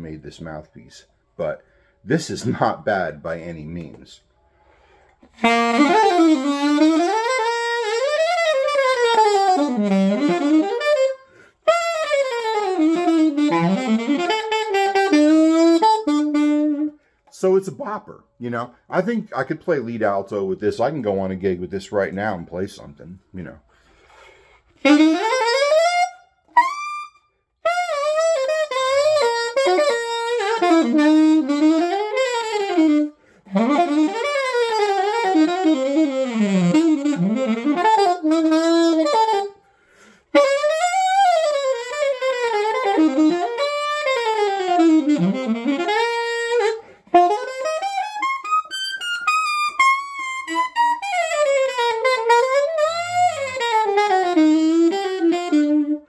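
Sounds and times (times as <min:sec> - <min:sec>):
alto saxophone jazz lines: 0:00.0 - 0:56.0.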